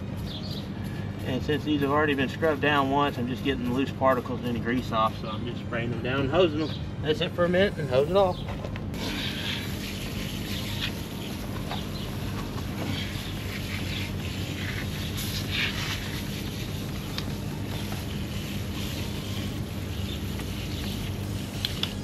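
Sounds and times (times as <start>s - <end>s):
steady low hum: 0.0s - 22.0s
hose spray hissing: 9.0s - 22.0s.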